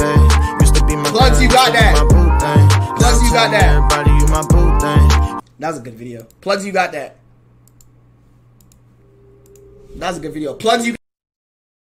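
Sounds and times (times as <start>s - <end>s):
computer mouse clicking: 7.6s - 8.0s, 8.6s - 8.8s.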